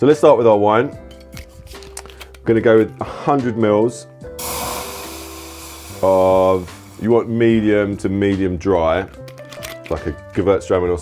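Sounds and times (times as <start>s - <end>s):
wine pouring into metal pan: 4.4s - 7.5s.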